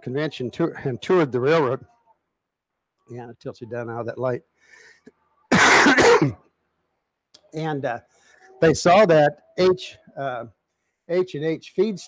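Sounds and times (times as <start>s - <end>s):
man coughing: 5.5s - 6.4s.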